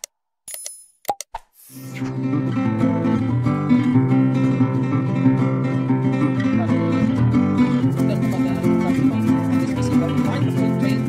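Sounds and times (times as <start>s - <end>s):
background music: 2.0s - 11.0s.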